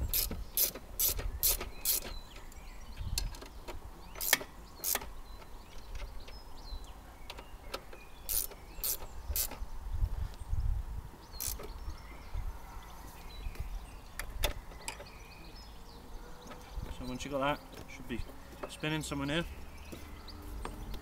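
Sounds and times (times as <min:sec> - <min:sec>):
ratchet wrench clicking: 0:00.0 - 0:02.1, 0:04.2 - 0:05.0, 0:08.3 - 0:09.6, 0:11.4 - 0:11.6.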